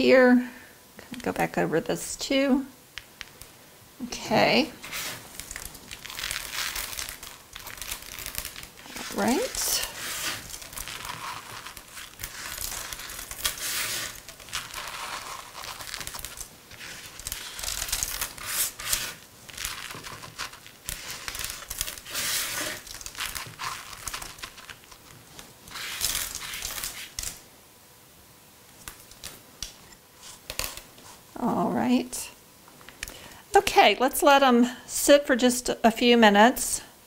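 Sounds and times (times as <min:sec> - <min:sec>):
rustling and crinkling: 0:04.7 - 0:27.4.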